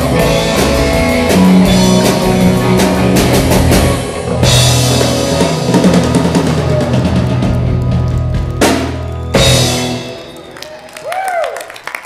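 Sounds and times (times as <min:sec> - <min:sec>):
live rock band playing loudly: 0:00.0 - 0:10.8.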